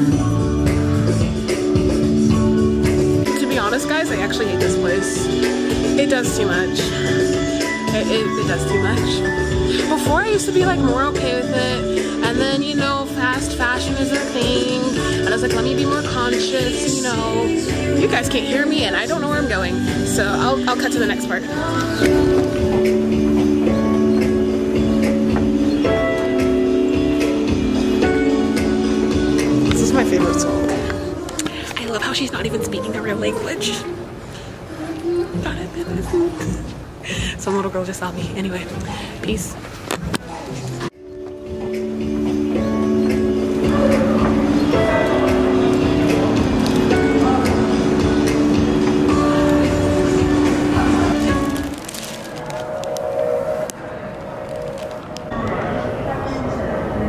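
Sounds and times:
music over sound system: 0.0s - 32.3s, 40.9s - 55.4s.

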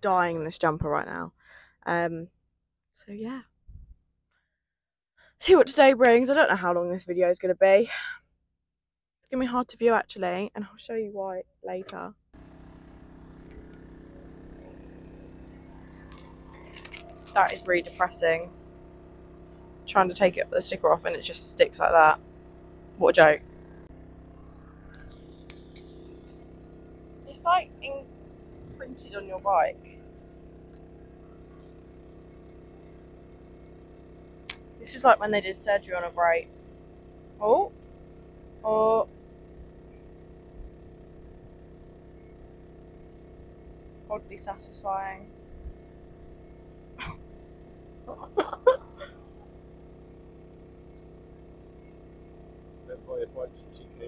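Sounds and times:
low mechanical hum: 9.4s - 54.0s
bursts of laughter: 48.1s - 49.2s.

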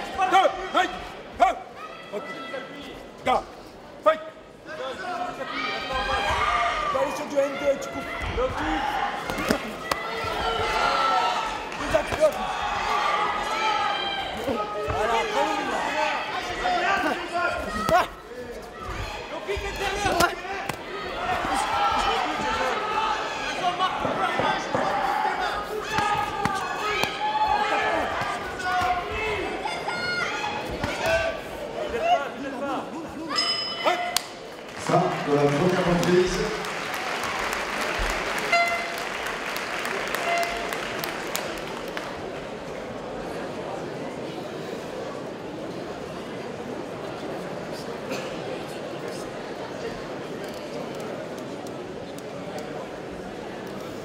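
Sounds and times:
people shouting: 5.3s - 32.3s.

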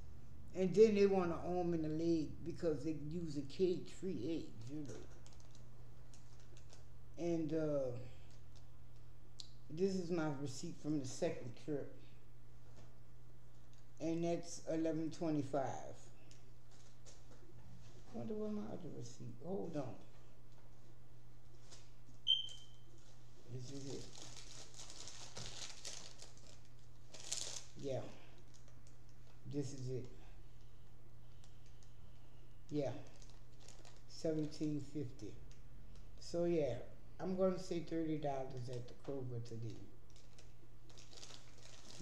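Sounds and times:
low electrical hum: 0.0s - 42.0s
paper receipt rustling: 4.8s - 6.9s, 21.5s - 27.8s, 33.0s - 34.6s, 40.1s - 42.0s.

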